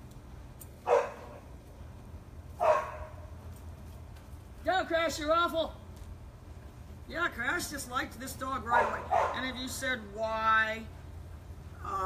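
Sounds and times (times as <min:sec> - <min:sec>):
dog barking: 0:00.9 - 0:01.4, 0:02.6 - 0:03.2, 0:08.7 - 0:09.4.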